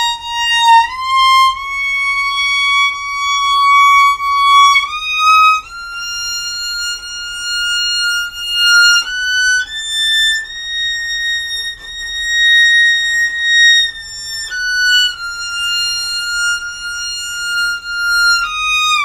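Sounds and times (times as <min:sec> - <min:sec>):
solo violin playing a scale: 0:00.0 - 0:19.0.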